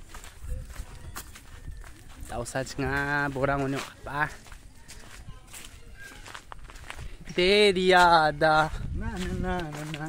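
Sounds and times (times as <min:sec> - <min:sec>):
faint voices: 0:00.0 - 0:10.0
footsteps on dirt path: 0:00.0 - 0:10.0.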